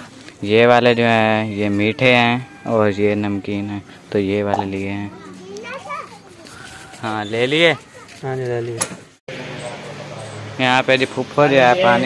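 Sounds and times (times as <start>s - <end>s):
child's high-pitched voice: 5.1s - 7.0s, 7.8s - 8.2s.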